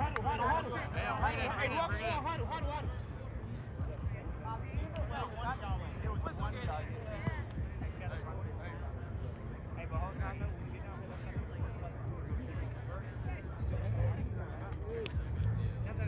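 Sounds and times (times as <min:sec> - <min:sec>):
steady low rumble: 0:00.0 - 0:12.7
people talking and calling out: 0:00.0 - 0:16.0.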